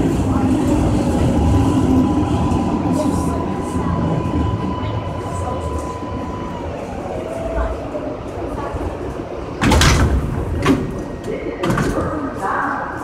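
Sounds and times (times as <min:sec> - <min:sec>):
subway train low rumble: 0:00.0 - 0:13.0.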